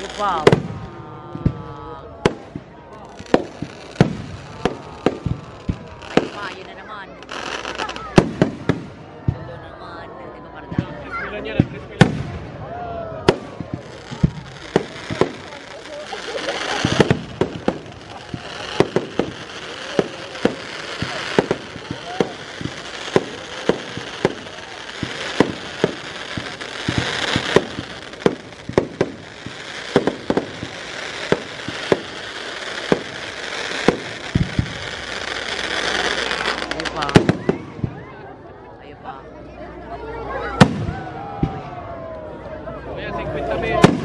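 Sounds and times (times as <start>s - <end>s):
fireworks crackle: 0.0s - 9.7s, 10.7s - 39.1s, 40.1s - 41.9s, 43.1s - 44.0s
fireworks bursts: 0.0s - 9.9s, 10.6s - 39.2s, 40.4s - 41.8s, 43.2s - 44.0s.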